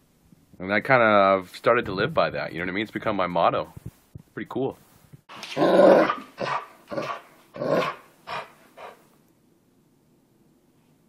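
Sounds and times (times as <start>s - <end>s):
dog growling in play: 5.4s - 9.0s.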